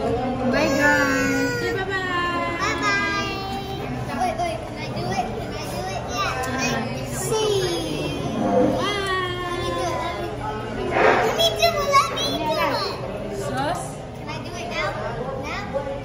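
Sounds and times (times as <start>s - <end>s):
adults talking: 0.0s - 16.0s
children calling out and chattering: 0.0s - 16.0s.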